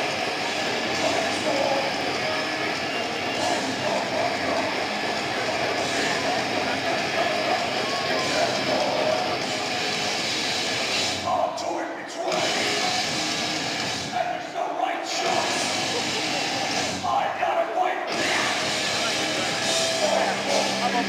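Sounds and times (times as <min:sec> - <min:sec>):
live metal band: 0:00.0 - 0:11.6, 0:12.2 - 0:14.2, 0:15.1 - 0:21.0
crowd shouting: 0:00.0 - 0:21.0.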